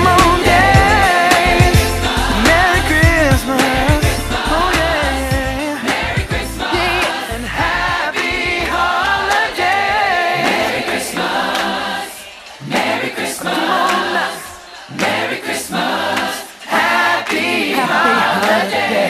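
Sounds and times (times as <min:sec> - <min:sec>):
bass line: 0:00.0 - 0:09.4
group of voices singing: 0:00.0 - 0:19.0.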